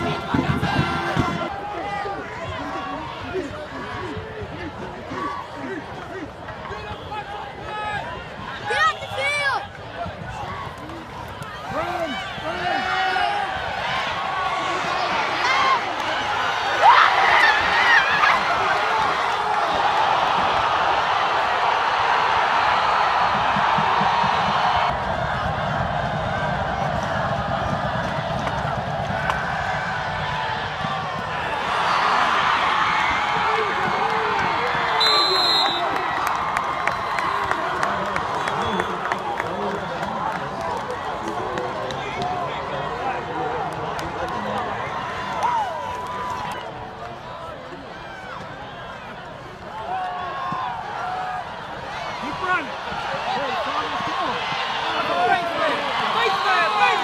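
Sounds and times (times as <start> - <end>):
stadium crowd cheering: 0.0 - 57.0.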